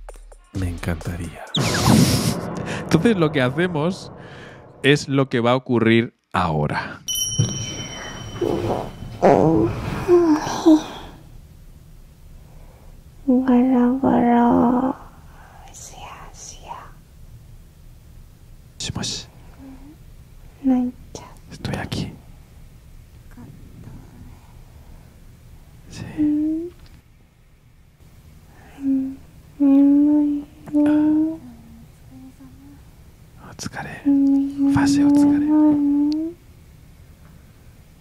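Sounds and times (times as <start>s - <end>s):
loud held note: 1.6s - 5.2s
woman humming softly: 8.6s - 11.2s, 25.9s - 26.8s, 28.6s - 32.9s, 34.1s - 36.4s
soft close whispering: 14.9s - 17.0s, 25.9s - 26.8s, 33.4s - 35.5s.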